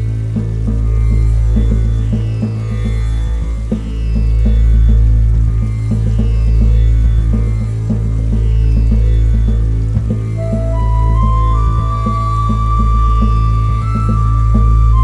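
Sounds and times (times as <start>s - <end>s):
low drone: 0.0s - 15.0s
plucked notes: 10.1s - 15.0s.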